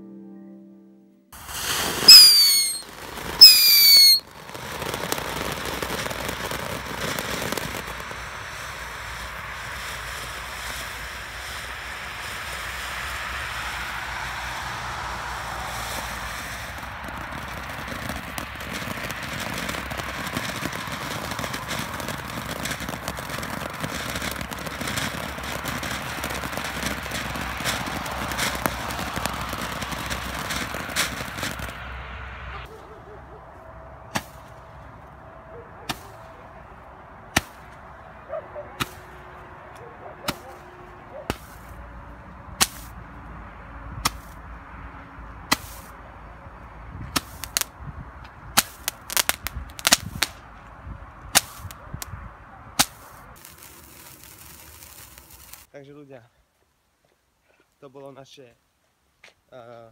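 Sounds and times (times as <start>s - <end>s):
firework whistles falling in pitch: 1.4s - 4.2s
hiss of spraying sparks: 1.4s - 6.4s, 7.0s - 17.1s, 52.8s - 55.7s
firework crackles: 1.4s - 32.7s, 34.0s - 35.2s, 35.9s - 44.8s, 45.4s - 46.1s, 46.9s - 55.9s.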